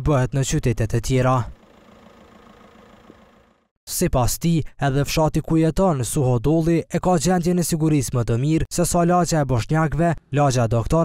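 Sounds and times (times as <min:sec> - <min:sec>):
car engine running: 0:01.5 - 0:03.7.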